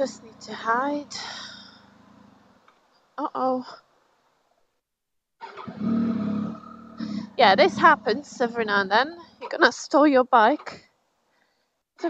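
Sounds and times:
motorcycle engine cranking: 5.4s - 8.6s.

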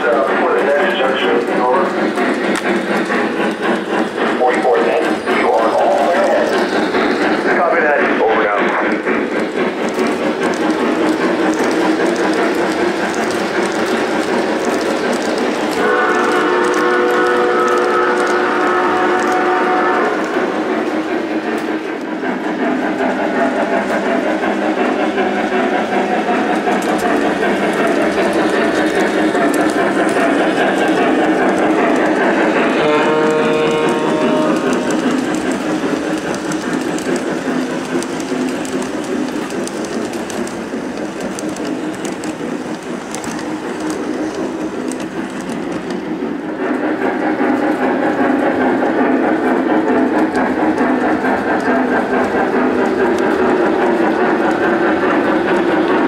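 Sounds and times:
model train wheels clattering: 0.0s - 56.0s
steam whistle blasts: 15.8s - 20.7s, 32.8s - 34.7s.

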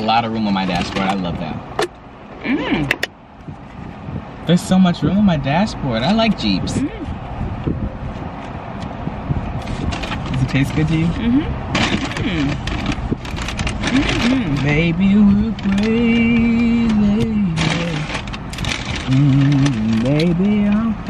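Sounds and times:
person humming with closed lips: 11.2s - 11.6s, 12.2s - 12.6s, 13.8s - 14.7s
paper food bags crackling: 11.8s - 14.9s, 15.5s - 20.9s.

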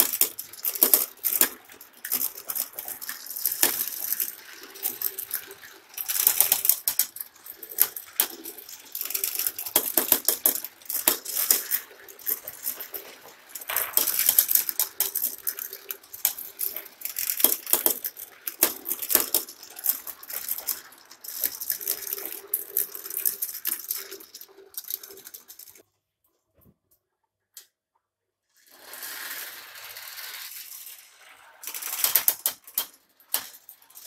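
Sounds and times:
marbles clicking and knocking: 0.0s - 25.8s, 28.8s - 34.0s
marbles rolling on plastic track: 0.0s - 25.8s, 28.5s - 34.0s.

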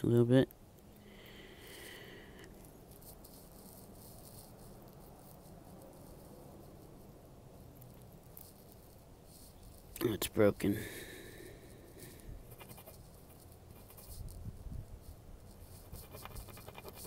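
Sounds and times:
faint rustling: 0.9s - 17.0s.

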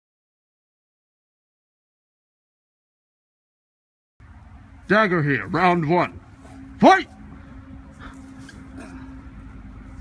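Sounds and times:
distant road traffic rumble: 4.2s - 10.0s.

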